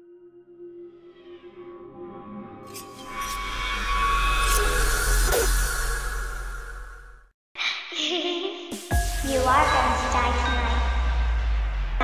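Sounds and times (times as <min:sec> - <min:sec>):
deep sub-bass boom: 0:08.9 - 0:12.0.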